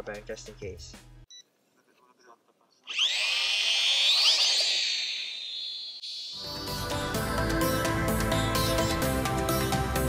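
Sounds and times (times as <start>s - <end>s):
toy drone motors whining: 2.8s - 6.4s.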